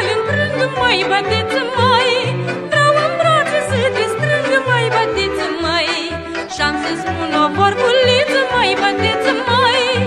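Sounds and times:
violins playing folk melody: 0:00.0 - 0:10.0.

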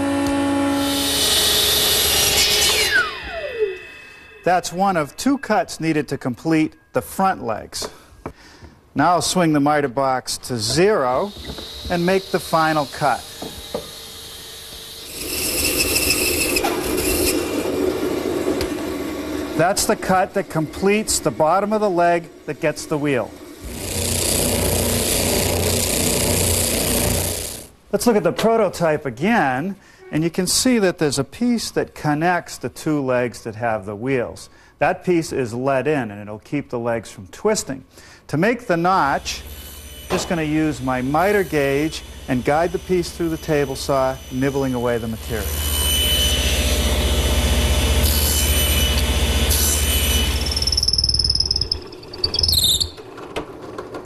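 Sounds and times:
table saw cutting wood: 0:00.0 - 0:06.0, 0:10.6 - 0:27.7, 0:38.8 - 0:53.0
high whine: 0:02.6 - 0:07.2
spindle sander running: 0:11.0 - 0:27.7
motor hum: 0:13.2 - 0:27.7.

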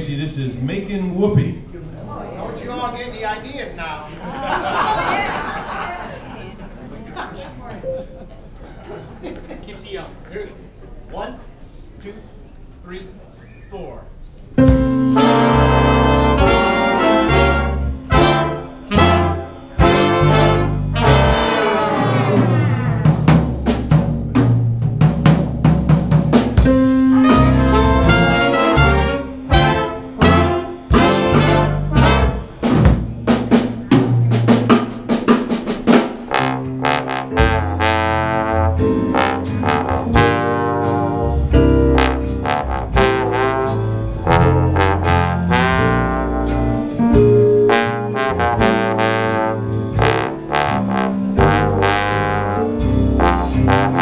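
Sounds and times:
jazz big band playing swing: 0:14.5 - 0:54.0
bass trombone solo: 0:14.6 - 0:23.9, 0:26.3 - 0:32.9, 0:36.3 - 0:54.0.

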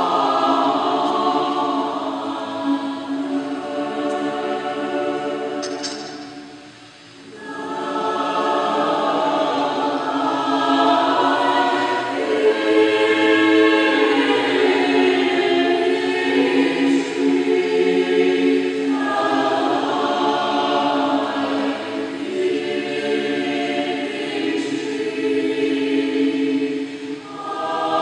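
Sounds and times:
mixed choir singing: 0:00.0 - 0:28.0.

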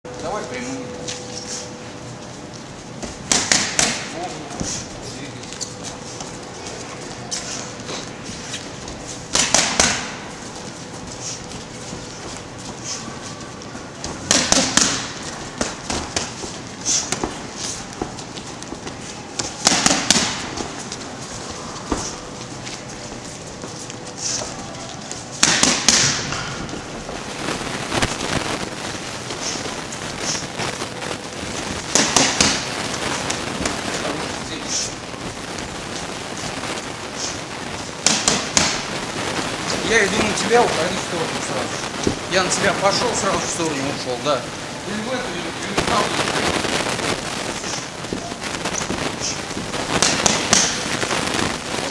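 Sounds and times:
boxing gloves punching mitts: 0:03.0 - 0:05.0, 0:06.1 - 0:13.3, 0:14.0 - 0:21.2, 0:21.8 - 0:22.9, 0:23.8 - 0:39.5, 0:45.8 - 0:51.9.

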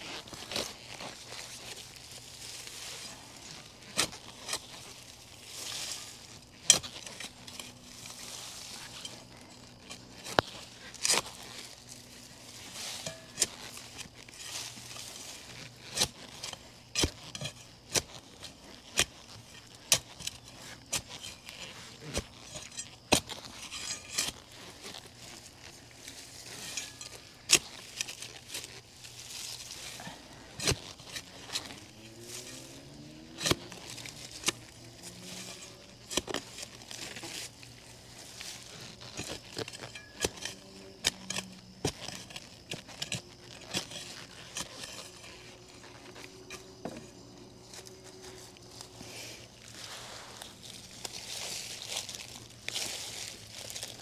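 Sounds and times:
gritty crunching: 0:00.0 - 0:54.0
shovel striking soil: 0:00.1 - 0:54.0.

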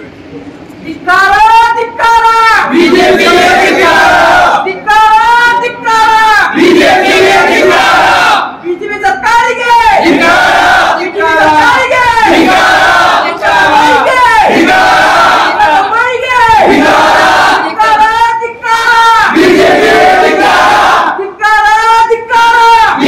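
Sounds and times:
crowd of men shouting slogans: 0:02.6 - 0:04.7, 0:06.1 - 0:08.5, 0:09.6 - 0:18.0, 0:18.8 - 0:21.2.

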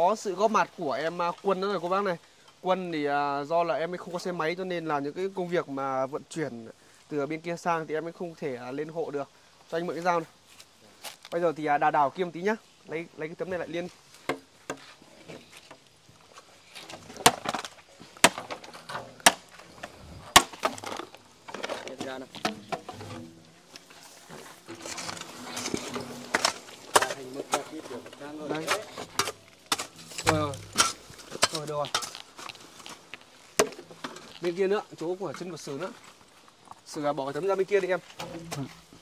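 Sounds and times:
metal roofing sheets clattering: 0:20.4 - 0:32.2.

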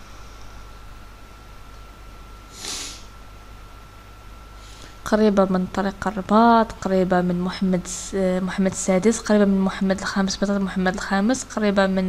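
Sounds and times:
faint steady hum: 0:00.0 - 0:12.0
short sharp breath: 0:02.5 - 0:03.1.

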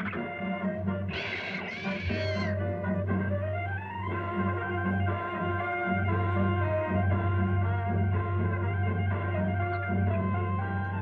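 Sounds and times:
orchestral background music: 0:00.0 - 0:11.0
cartoon monkey squealing: 0:01.1 - 0:02.6.

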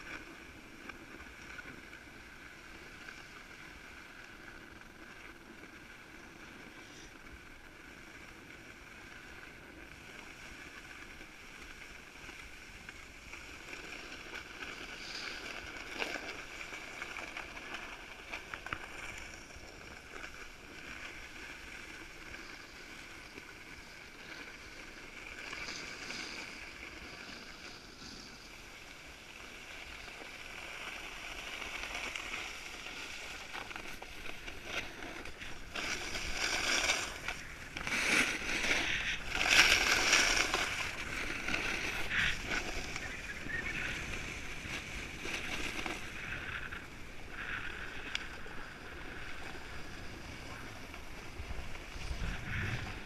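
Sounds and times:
snowboard scraping over snow: 0:00.0 - 0:53.0.

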